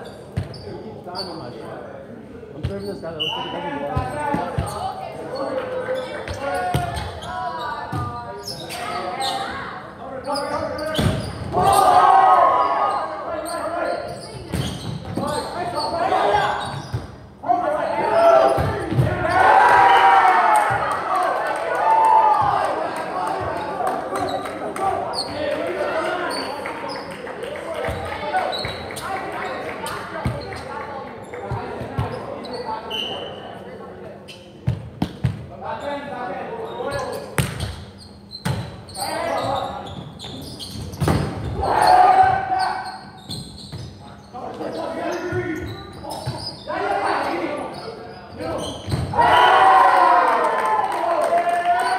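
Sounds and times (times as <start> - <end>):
people shouting and cheering: 11.5 - 13.3, 17.7 - 26.7, 41.6 - 42.9, 49.1 - 51.9.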